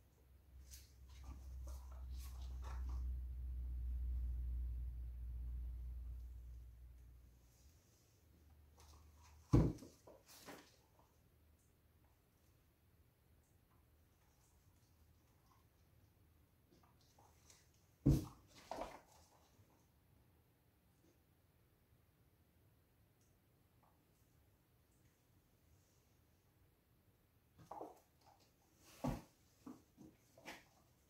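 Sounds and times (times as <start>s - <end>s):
low hum: 1.9s - 7.4s.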